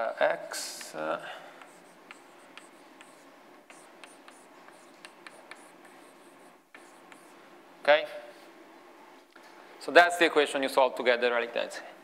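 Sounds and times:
chalk tapping and scratching on blackboard: 0.5 - 1.0, 1.6 - 7.4.

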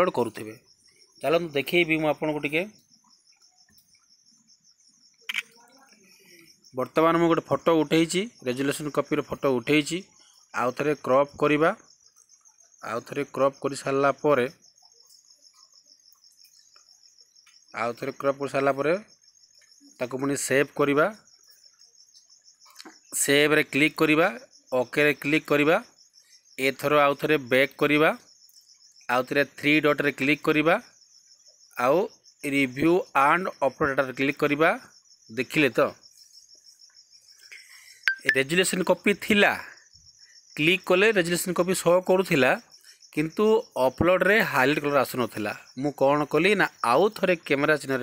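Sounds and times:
insects trilling: 0.0 - 48.0.

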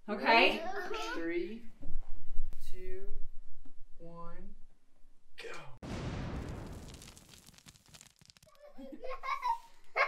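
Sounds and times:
balloon bursting: 5.8 - 8.7
confetti rustling down: 5.9 - 9.0.

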